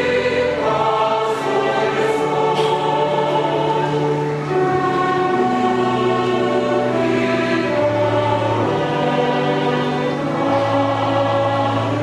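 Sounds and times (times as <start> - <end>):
chamber orchestra: 0.0 - 12.0
choir singing: 0.0 - 12.0.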